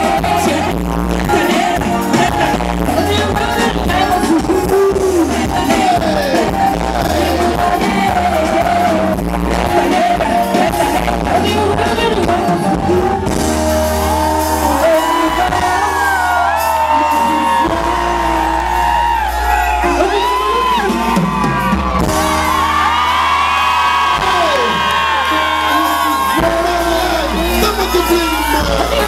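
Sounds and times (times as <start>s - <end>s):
steady bass line: 0.0s - 29.0s
woman singing into a microphone: 10.8s - 13.2s.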